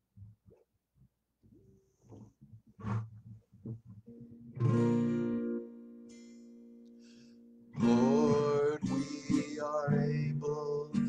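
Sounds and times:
acoustic guitar: 1.5 - 11.0.

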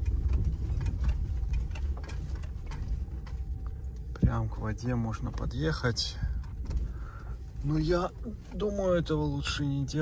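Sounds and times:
light clicks and ticks: 0.0 - 7.4.

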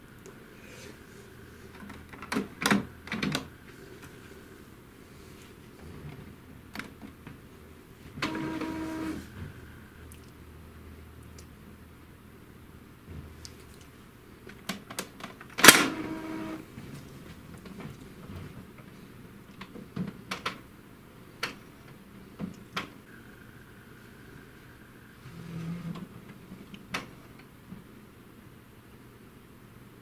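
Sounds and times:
printer mechanical clicks and whirs: 1.7 - 4.2, 8.1 - 9.7, 14.5 - 20.6
thin motor whine: 8.2 - 10.1, 15.8 - 16.7.

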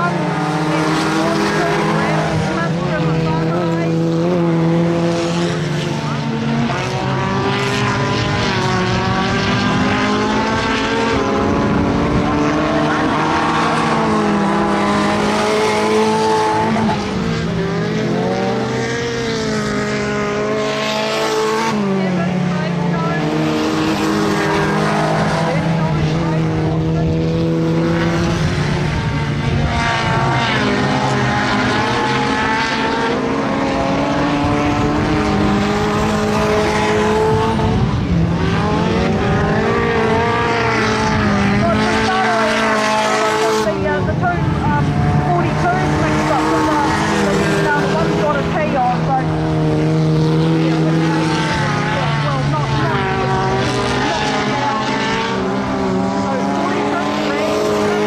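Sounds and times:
race car engines revving: 0.0 - 58.0.

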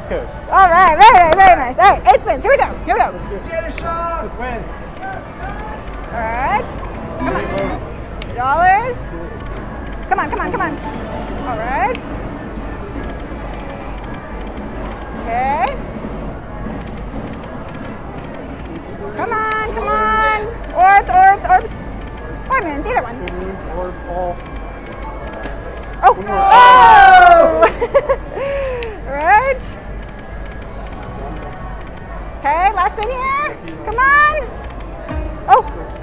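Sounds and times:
crowd chatter: 0.0 - 36.0.

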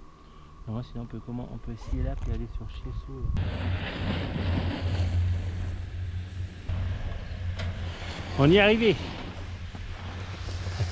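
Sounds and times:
wind buffeting microphone: 1.6 - 10.9.

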